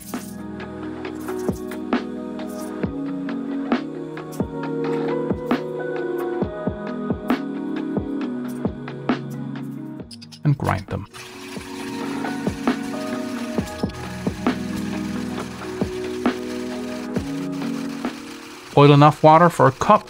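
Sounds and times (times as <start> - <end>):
background music: 0.0 - 20.0
hand coffee grinder grinding beans: 11.2 - 20.0.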